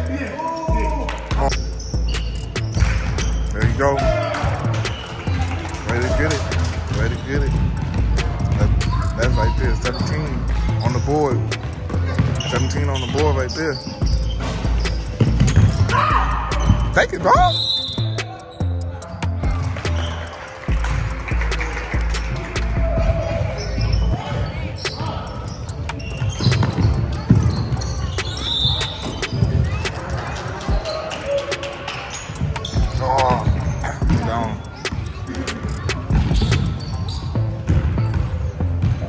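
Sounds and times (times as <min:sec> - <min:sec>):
voices of players and spectators: 0:00.0 - 0:39.0
basketball bouncing on hardwood: 0:14.5 - 0:16.0.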